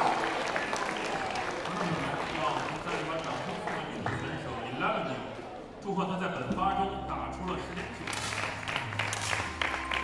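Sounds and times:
spectators applauding: 0:00.0 - 0:04.5, 0:07.7 - 0:10.0.

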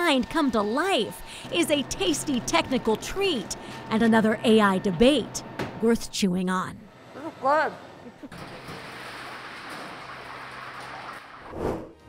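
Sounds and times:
low hum of kitchen machinery: 0:00.0 - 0:11.4
deep fryer oil sizzling: 0:08.4 - 0:11.5.

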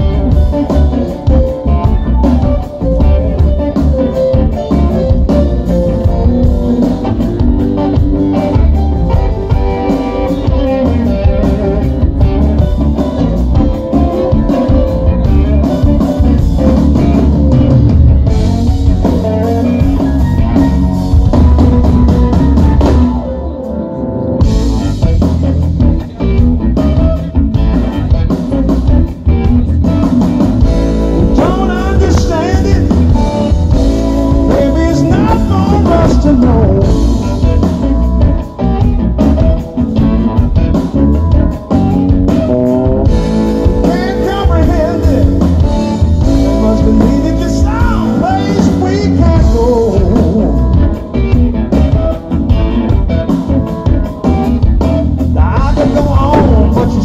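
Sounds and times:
bass guitar: 0:00.0 - 0:57.0
drum kit: 0:00.0 - 0:57.0
electric guitar lead: 0:00.0 - 0:57.0.

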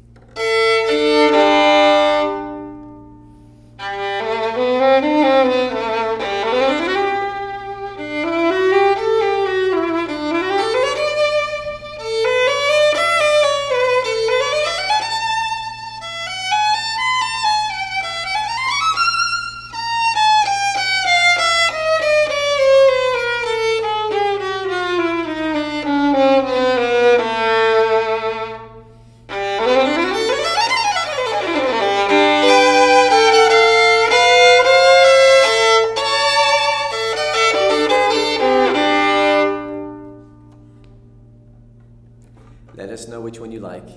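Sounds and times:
solo violin played with bow: 0:00.0 - 0:42.0.

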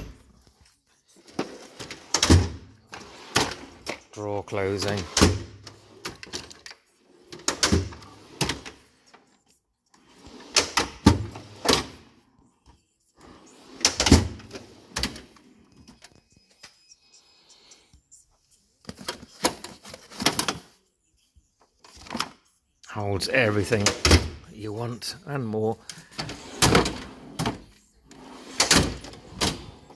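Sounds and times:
steel drawers sliding: 0:01.2 - 0:04.0, 0:10.1 - 0:12.0, 0:13.2 - 0:15.3, 0:26.1 - 0:29.9.

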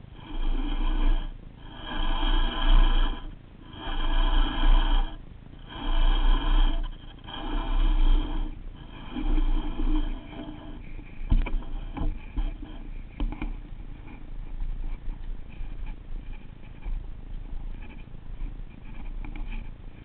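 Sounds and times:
fishing reel gears whirring: 0:00.0 - 0:12.9.

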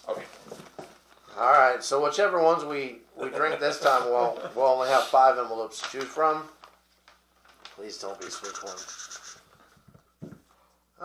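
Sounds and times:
paper envelope rustling: 0:05.8 - 0:09.4.

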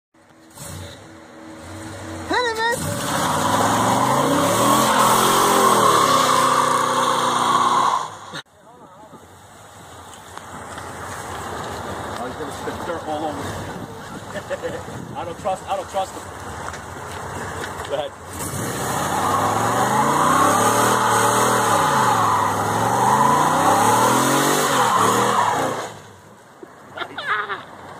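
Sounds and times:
car engine revving: 0:00.4 - 0:08.4, 0:18.2 - 0:26.1
tyres spinning and squealing: 0:00.5 - 0:08.4, 0:18.2 - 0:26.1
tyres spinning on wet road: 0:18.3 - 0:26.0.

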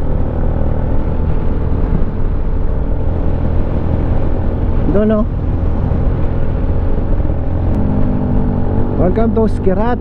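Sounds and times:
wind noise: 0:00.0 - 0:10.0.

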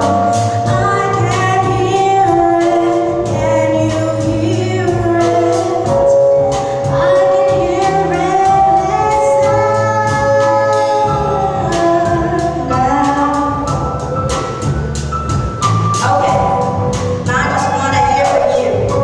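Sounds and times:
woman singing into a microphone: 0:00.0 - 0:14.3, 0:17.3 - 0:19.0
drums and cymbals beat: 0:00.0 - 0:19.0
live band playing: 0:00.0 - 0:19.0.

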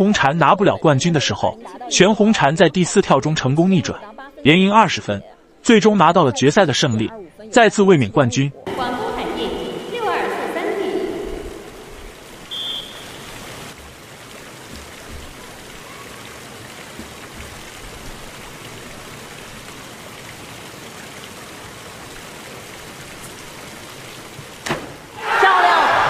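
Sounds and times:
short high whistle: 0:12.5 - 0:13.3.

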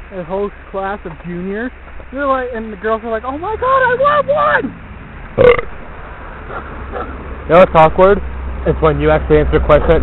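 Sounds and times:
short low vocal noise: 0:05.4 - 0:05.8.

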